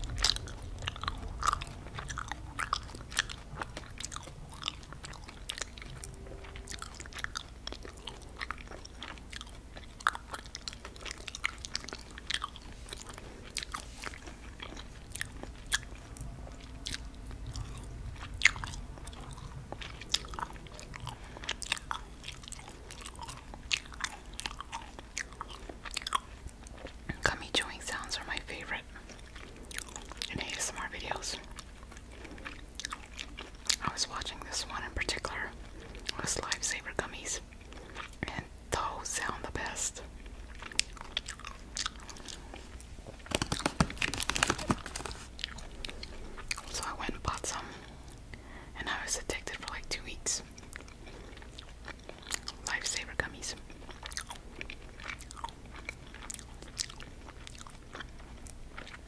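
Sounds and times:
chewing gummy candy: 0:00.0 - 0:59.0.

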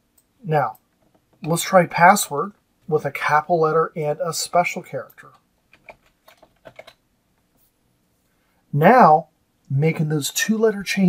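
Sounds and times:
faint computer keystrokes: 0:05.2 - 0:07.5.

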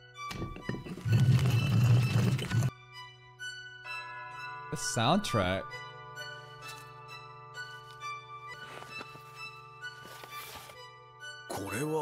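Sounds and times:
bowed strings score: 0:00.0 - 0:11.9.

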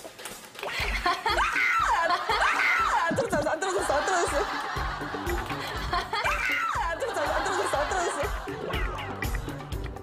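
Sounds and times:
background music: 0:00.0 - 0:10.0
women laughing and shrieking: 0:00.8 - 0:04.6, 0:05.6 - 0:09.3.

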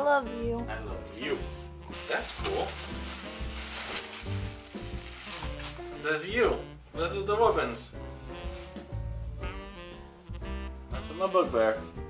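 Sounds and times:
soft background melody: 0:00.0 - 0:12.0
plastic packaging crinkling: 0:01.4 - 0:06.3.

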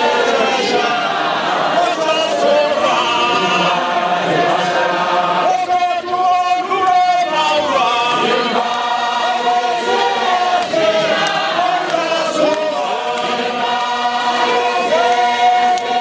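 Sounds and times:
congregation singing: 0:00.0 - 0:16.0.

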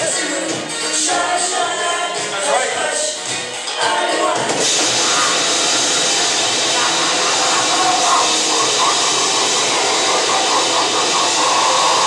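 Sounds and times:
grindcore band playing live: 0:04.5 - 0:12.0.

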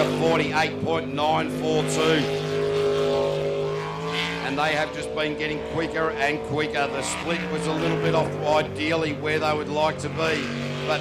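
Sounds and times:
boat engine running hard: 0:00.0 - 0:11.0.

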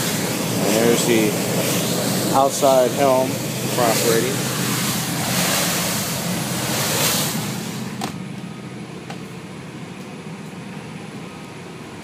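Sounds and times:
rushing wind and wake: 0:00.0 - 0:08.1
low hum of yacht engines: 0:00.0 - 0:12.0.

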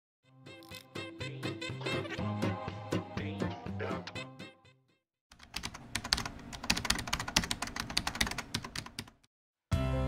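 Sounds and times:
typing on computer keyboard: 0:05.3 - 0:09.2.

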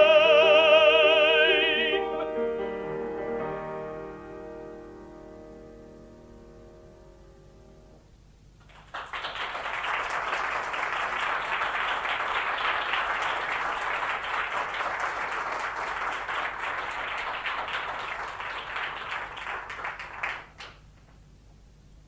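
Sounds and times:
audience applause: 0:08.6 - 0:20.9.

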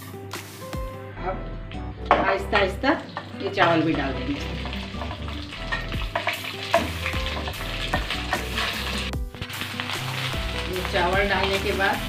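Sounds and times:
metal spoon scraping pan: 0:02.1 - 0:09.1
rice sizzling in hot fat: 0:02.4 - 0:12.0.

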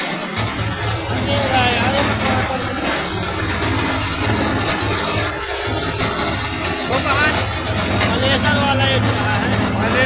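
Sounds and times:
rice mill running: 0:00.0 - 0:10.0.

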